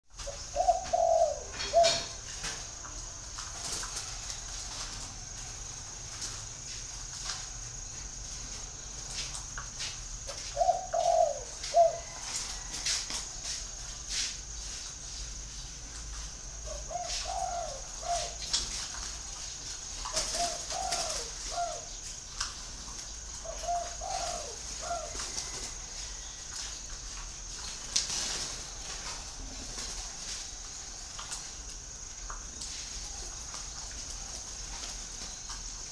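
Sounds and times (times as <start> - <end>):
dove cooing: 0.2 - 2.3, 10.3 - 12.7, 16.6 - 18.6, 20.0 - 22.0, 23.4 - 26.3.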